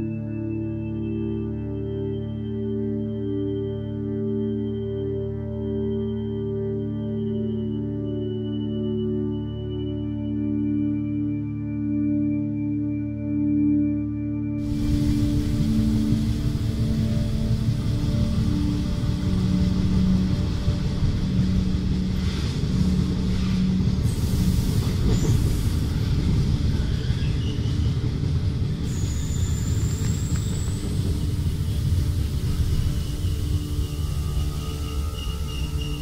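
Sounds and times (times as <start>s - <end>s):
soft ambient music: 0.0s - 36.0s
train rumble inside carriage: 14.6s - 36.0s.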